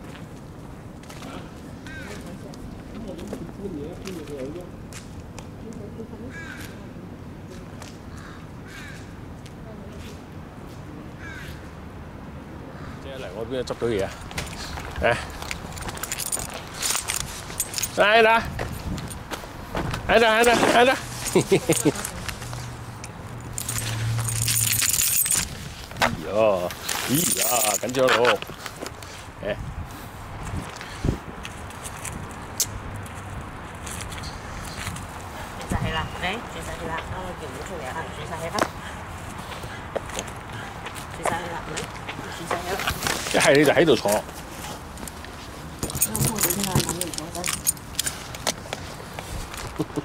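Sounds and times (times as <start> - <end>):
small metal pieces jingling: 15.3 - 18.2, 20.4 - 25.6, 26.8 - 28.2, 45.8 - 48.3.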